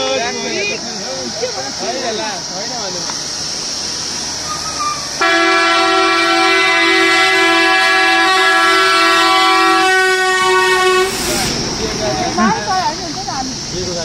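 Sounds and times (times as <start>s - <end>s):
bus passing by: 0.0s - 14.0s
bus horn blast: 4.8s - 11.5s.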